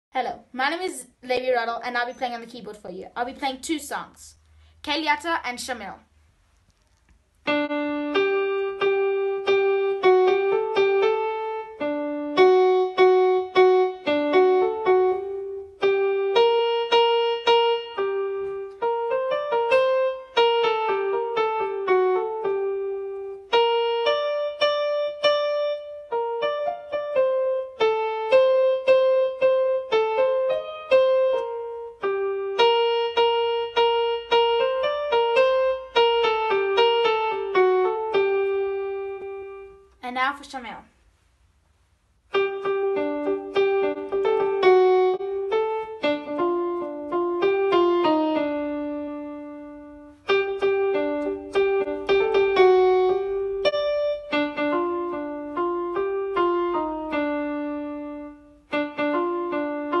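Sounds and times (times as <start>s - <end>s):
electronic keyboard piano melody: 7.3s - 40.0s, 42.3s - 60.0s.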